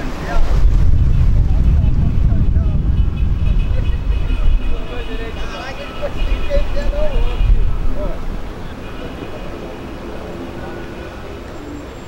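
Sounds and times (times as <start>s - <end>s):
wind buffeting microphone: 0.0s - 11.6s
faint voices: 0.0s - 12.0s.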